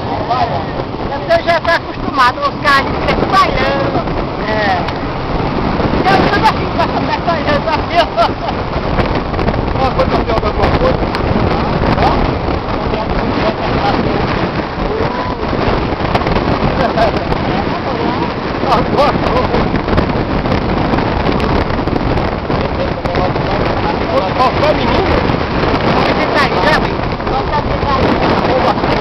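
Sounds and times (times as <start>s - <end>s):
people talking indistinctly: 0.0s - 29.0s
wind buffeting microphone: 0.0s - 29.0s.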